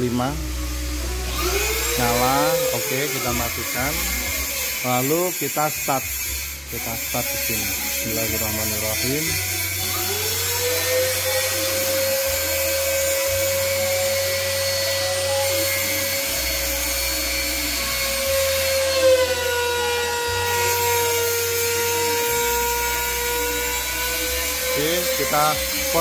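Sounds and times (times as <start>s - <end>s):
router spindle high whine: 0.0s - 26.0s.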